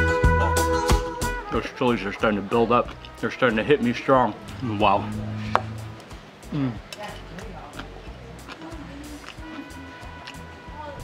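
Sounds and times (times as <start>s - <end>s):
soft background music: 1.0s - 11.0s
man humming mm while eating: 4.5s - 6.9s.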